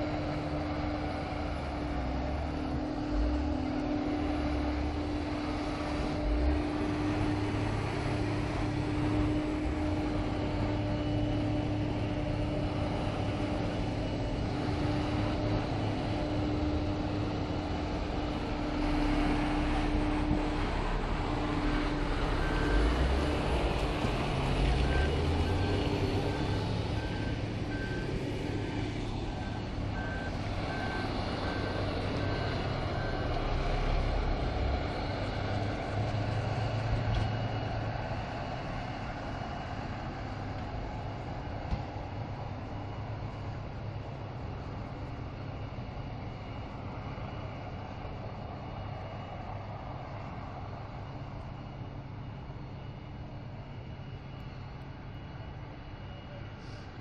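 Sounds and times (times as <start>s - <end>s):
tractor diesel engine under load: 0.0s - 57.0s.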